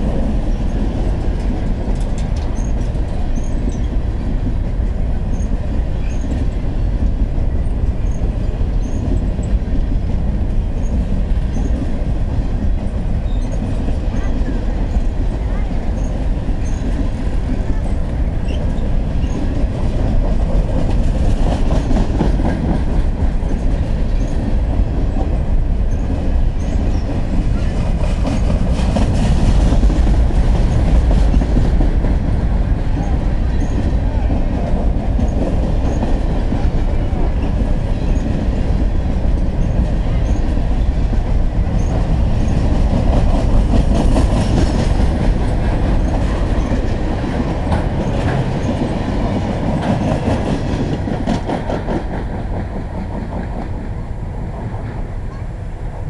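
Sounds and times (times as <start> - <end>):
wheels clacking over rail joints: 0.0 - 53.8
freight train rolling by: 0.0 - 56.0.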